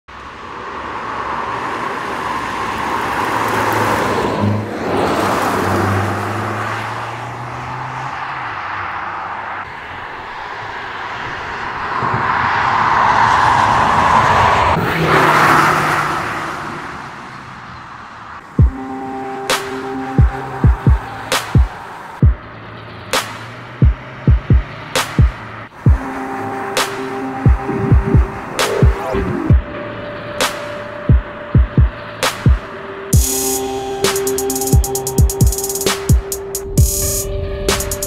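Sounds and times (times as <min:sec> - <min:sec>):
tyre and road noise: 0:00.1 - 0:38.0
car driving past: 0:00.4 - 0:30.5.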